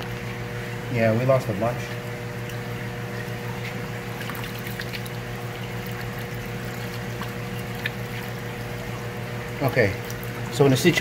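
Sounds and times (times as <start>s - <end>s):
water pumps humming: 0.0s - 11.0s.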